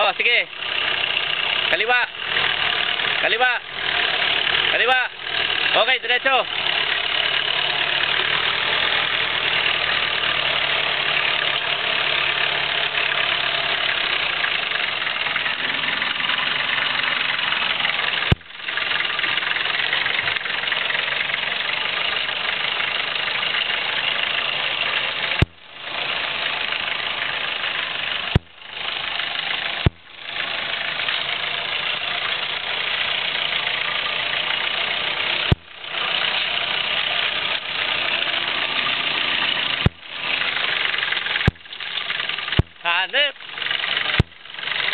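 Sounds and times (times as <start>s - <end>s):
engine running at low revs: 0.0s - 44.9s
sharp clicks: 39.6s - 44.9s.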